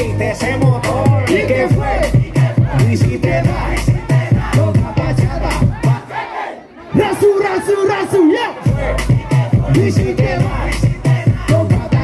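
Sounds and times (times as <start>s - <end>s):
party dance music: 0.0s - 12.0s
crowd shouting together: 0.3s - 12.0s.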